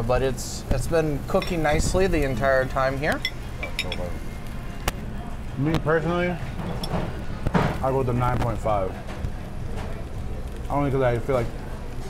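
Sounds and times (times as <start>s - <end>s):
restaurant background noise: 0.0s - 12.0s
cutlery clinking on a platter: 1.3s - 1.8s, 3.1s - 4.1s, 6.6s - 7.2s.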